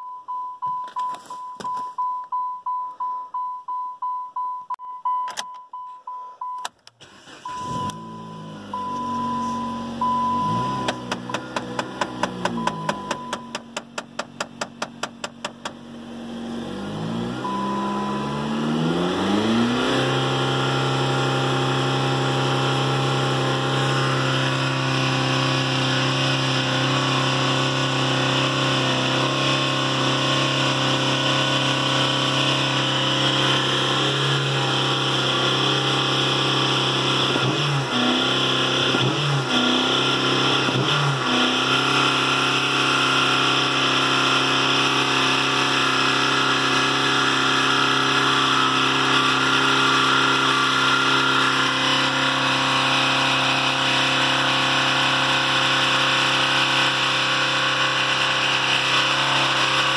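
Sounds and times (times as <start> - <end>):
car engine revving high: 7.0 - 59.9.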